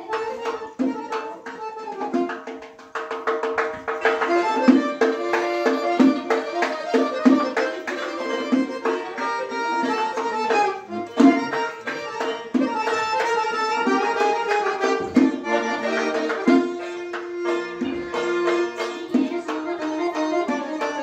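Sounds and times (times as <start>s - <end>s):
accordion playing chords and melody: 0.0s - 2.8s, 3.5s - 21.0s.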